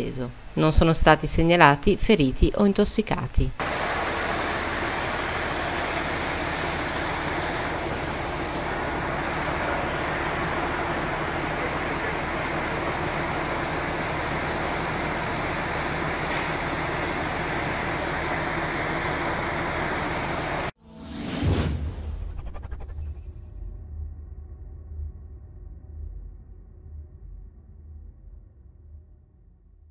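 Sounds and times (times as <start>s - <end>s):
diesel engine humming: 3.4s - 20.8s.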